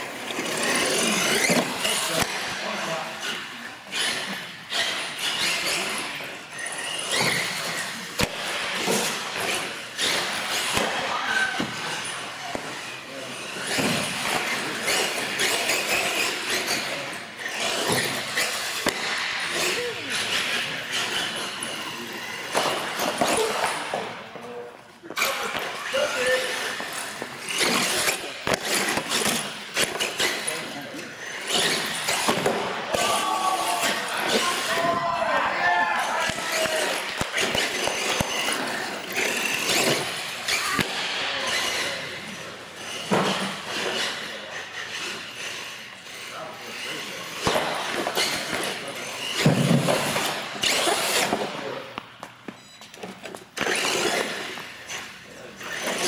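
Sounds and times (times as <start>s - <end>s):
toy truck driving: 0.0s - 10.8s, 11.6s - 51.8s, 52.5s - 56.0s.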